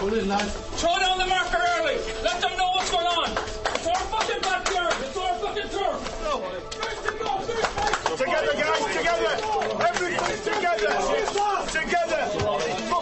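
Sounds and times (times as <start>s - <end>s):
men shouting: 0.8s - 13.0s
sharp claps and knocks: 2.7s - 5.2s, 6.0s - 12.0s.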